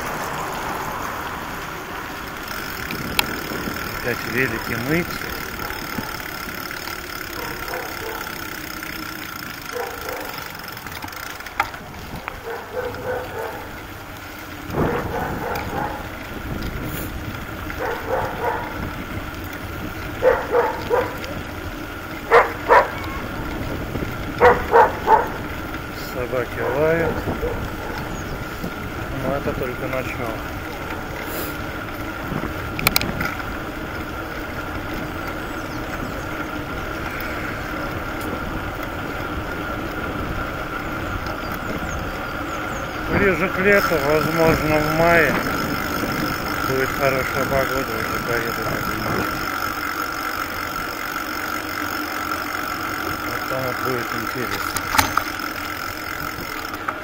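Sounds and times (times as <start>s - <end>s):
wind and road noise: 0.0s - 57.0s
voices: 1.6s - 16.8s, 17.4s - 56.9s.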